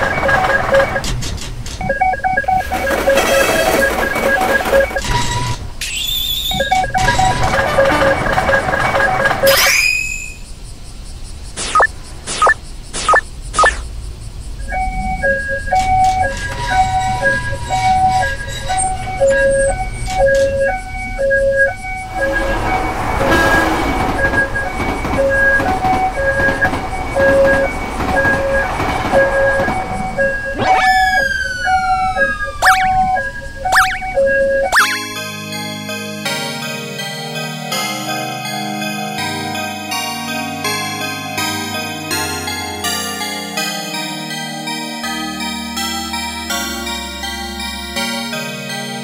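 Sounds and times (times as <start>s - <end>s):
railroad crossing alarm: 0.0s - 10.5s, 14.5s - 49.0s
falling whistle-like sweeps: 9.5s - 10.5s, 14.6s - 35.4s
rushing noise: 16.9s - 35.2s.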